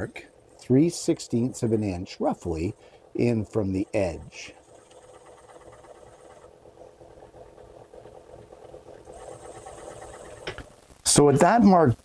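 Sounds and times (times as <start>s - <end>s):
wood lathe humming: 0.0s - 10.6s.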